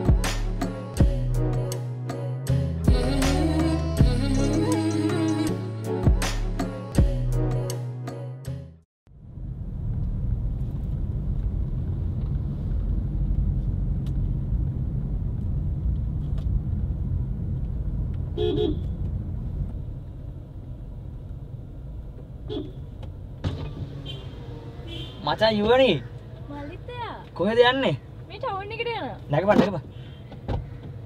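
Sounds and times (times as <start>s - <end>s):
car road rumble: 9.1s - 31.0s
car horn toot: 18.4s - 19.0s, 22.5s - 22.8s, 24.0s - 25.5s.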